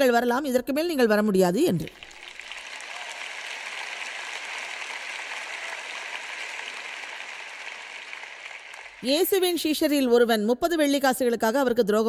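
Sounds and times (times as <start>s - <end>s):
audience applauding: 1.9s - 9.2s.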